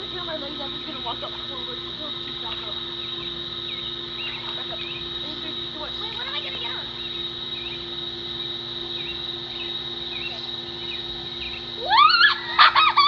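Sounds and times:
faint high whine: 0.0 - 13.0
steady background hum: 0.0 - 13.0.

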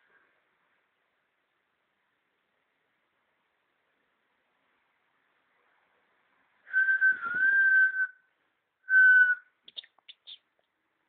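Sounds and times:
person whistling: 6.7 - 8.2, 8.9 - 9.5.

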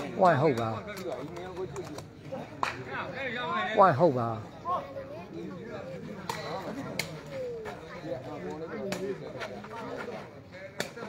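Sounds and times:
men talking in background: 0.0 - 11.0.

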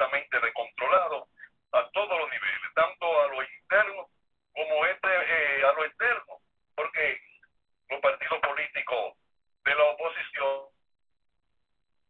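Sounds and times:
person talking over telephone: 0.0 - 10.8.

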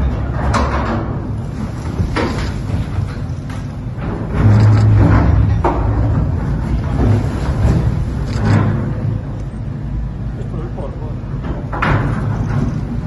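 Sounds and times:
excavator engine rumbling: 0.0 - 13.0.

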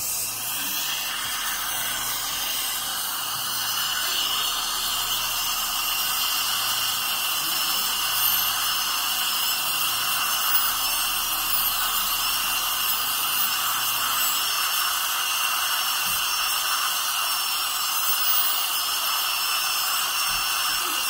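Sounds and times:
dental drill whining: 0.0 - 21.0
suction tube hissing: 0.0 - 21.0.

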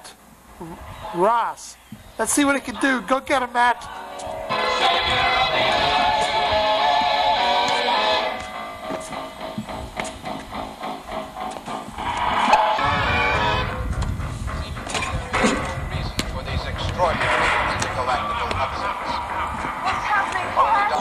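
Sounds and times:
music with singing: 3.8 - 14.0
low rumble: 8.3 - 21.0.

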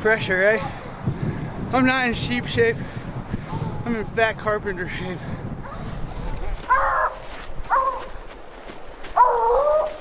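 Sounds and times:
hounds baying: 6.7 - 8.2, 9.1 - 10.0.

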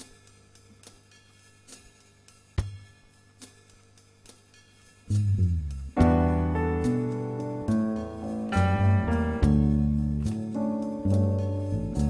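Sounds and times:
low steady tone: 5.7 - 12.0.

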